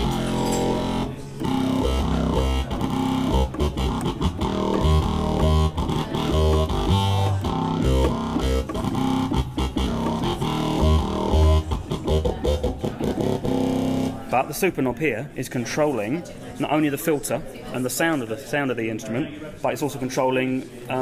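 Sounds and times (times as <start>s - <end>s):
synthesizer bass line: 0.0s - 14.3s.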